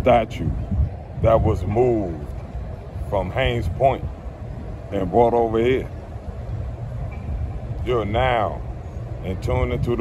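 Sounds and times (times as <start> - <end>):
man talking: 0.0 - 2.3, 3.0 - 4.1, 4.8 - 6.0, 7.8 - 10.0
wind buffeting microphone: 0.0 - 10.0.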